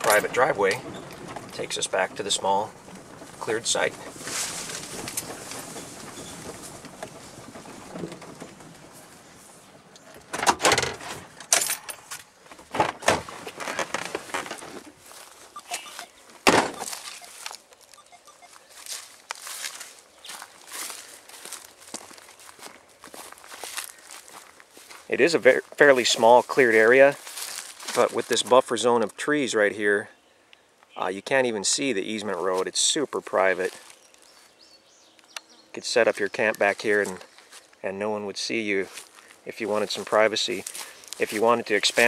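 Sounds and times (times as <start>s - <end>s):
footsteps through grass: 1.9s - 7.9s, 13.3s - 28.6s, 32.2s - 34.6s, 36.0s - 37.8s, 38.5s - 42.0s.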